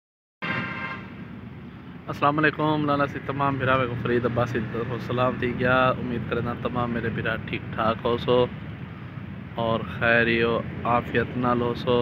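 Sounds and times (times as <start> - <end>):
vehicle horn note: 0.4 - 1.2.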